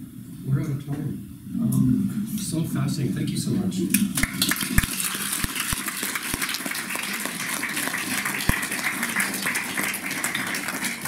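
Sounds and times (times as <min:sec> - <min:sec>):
audience applauding: 0:04.1 - 0:11.0.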